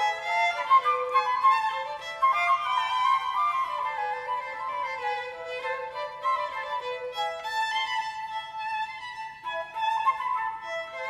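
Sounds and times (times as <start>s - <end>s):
flute: 0.0s - 11.0s
small string ensemble: 0.0s - 11.0s
violin: 0.0s - 11.0s.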